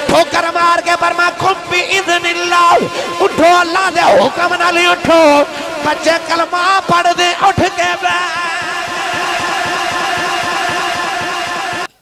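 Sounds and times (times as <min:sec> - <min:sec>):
low pulsing: 0:00.0 - 0:11.9
man singing a long note: 0:00.0 - 0:11.9.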